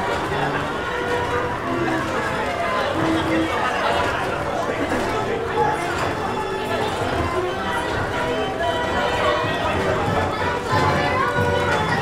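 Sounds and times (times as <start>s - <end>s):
carousel music with held notes: 0.0s - 12.0s
voices and chatter: 0.0s - 12.0s.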